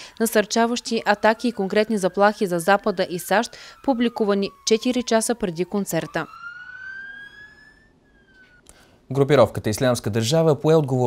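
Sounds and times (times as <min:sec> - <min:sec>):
emergency siren wailing: 0:00.0 - 0:08.6.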